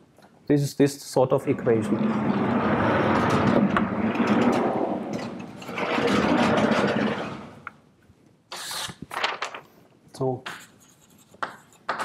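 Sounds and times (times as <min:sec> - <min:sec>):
blackboard panels rumbling on runners: 0:01.7 - 0:07.7.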